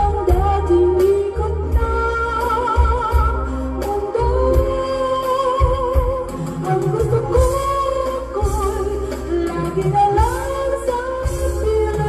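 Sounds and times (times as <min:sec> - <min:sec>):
backing track with bass: 0:00.0 - 0:12.0
woman singing a ballad: 0:00.0 - 0:12.0.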